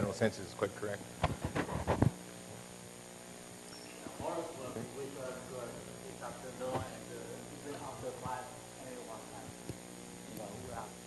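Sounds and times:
electrical mains hum: 0.0 - 11.0
speech fragments: 4.1 - 9.6.

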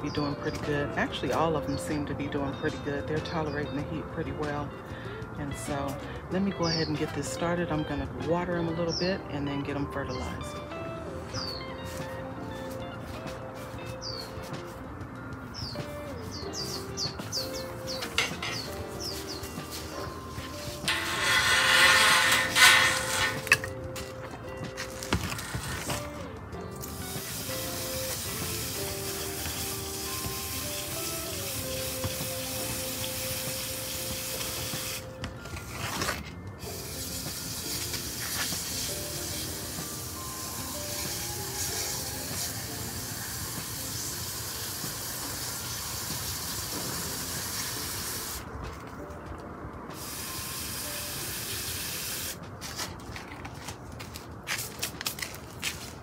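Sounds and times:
hose nozzle spray hissing: 18.9 - 23.6, 26.9 - 35.1, 36.6 - 48.4, 50.0 - 52.4.

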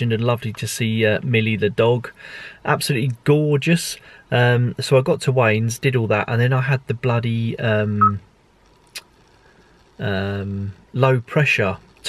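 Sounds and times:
man saying um: 10.0 - 11.3.

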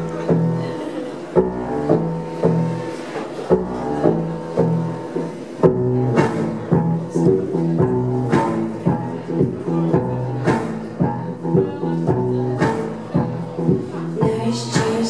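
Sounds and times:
deep low guitar notes: 0.0 - 14.8.

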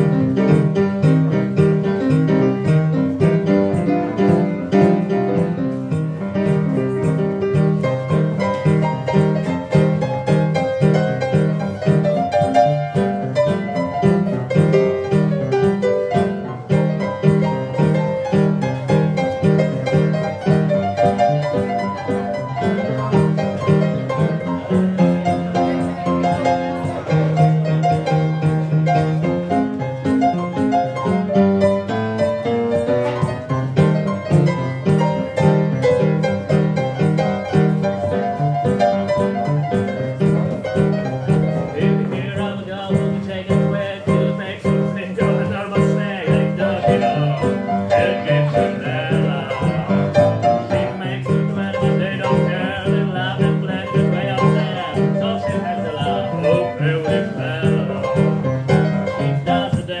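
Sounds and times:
upright piano playing swing: 0.0 - 60.0.

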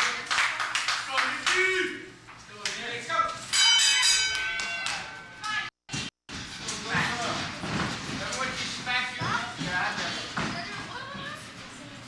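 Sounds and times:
audience clapping: 0.0 - 1.6
ring bell ringing: 3.5 - 5.4.

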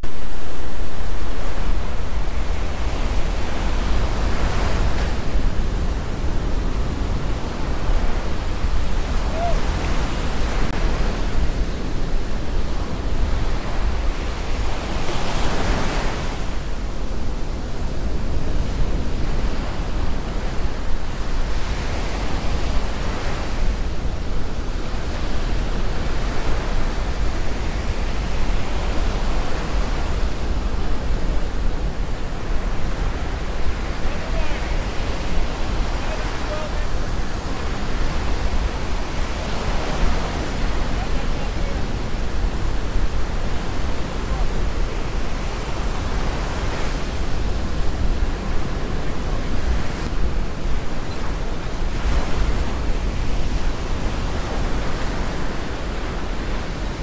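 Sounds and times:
surf breaking on beach: 0.0 - 57.0
wind rumbling on microphone: 0.0 - 57.0.

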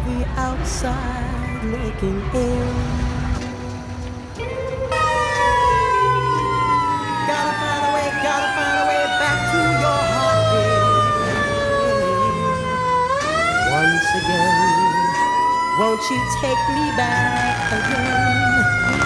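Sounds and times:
siren wailing: 4.5 - 19.0.

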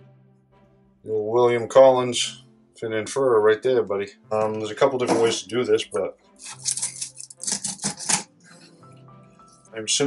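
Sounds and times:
knife scraping through fish: 6.4 - 8.8.

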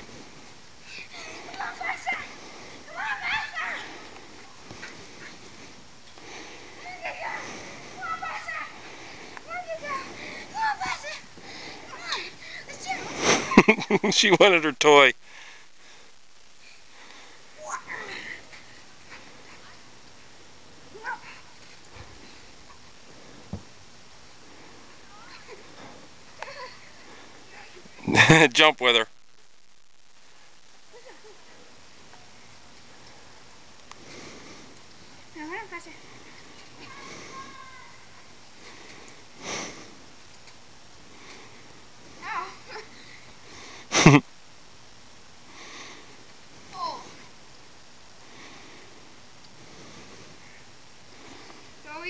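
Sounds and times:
faint steady hiss: 0.0 - 52.0.

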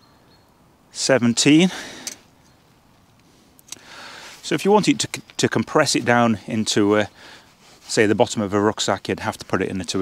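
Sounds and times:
soft handling rustle: 2.0 - 10.0.

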